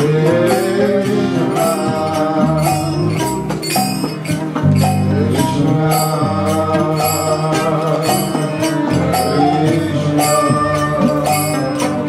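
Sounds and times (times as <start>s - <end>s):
sung chant: 0.0s - 3.6s, 4.8s - 12.0s
sharp percussion strokes: 0.0s - 12.0s.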